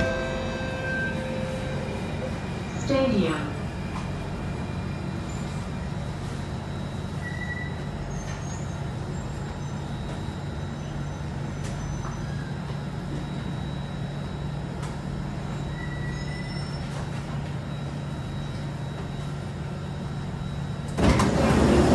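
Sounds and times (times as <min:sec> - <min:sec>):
faint high whine: 0:00.0 - 0:21.2
metro train cabin hum: 0:00.0 - 0:21.9.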